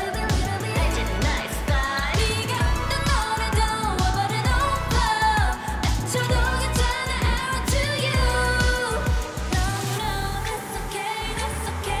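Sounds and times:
heavy kick drum beat: 0.0 - 9.8
female vocals: 0.0 - 12.0.

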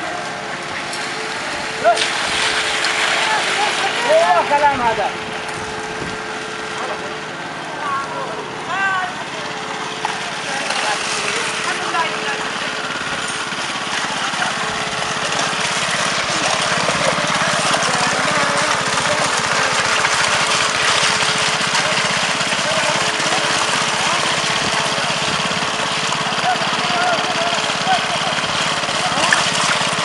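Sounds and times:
small petrol engine running: 0.0 - 30.0.

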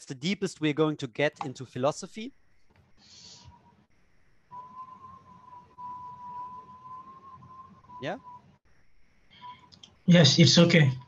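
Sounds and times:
high-pitched whistle-like tone: 4.5 - 8.6.

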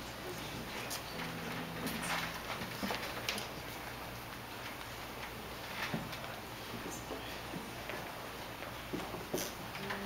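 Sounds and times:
quiet room hum: 0.0 - 10.0.

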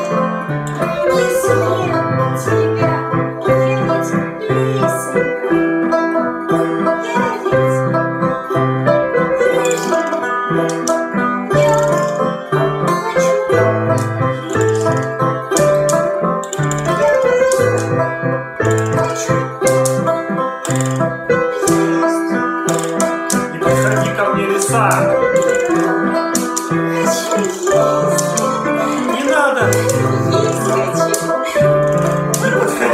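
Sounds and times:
banjo picking: 0.0 - 32.9
keyboard chords: 0.0 - 32.9.

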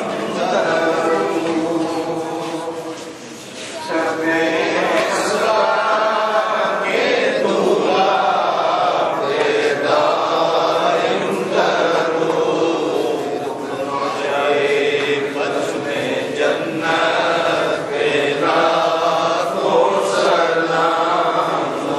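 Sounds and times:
men chanting in unison: 0.0 - 21.9.

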